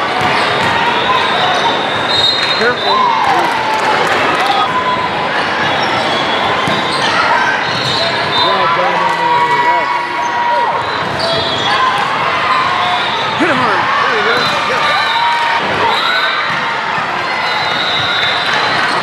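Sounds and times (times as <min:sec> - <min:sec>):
balls bouncing and being hit: 0:00.0 - 0:04.8, 0:05.6 - 0:09.5, 0:15.6 - 0:19.0
sneakers squeaking on hardwood: 0:05.6 - 0:08.6.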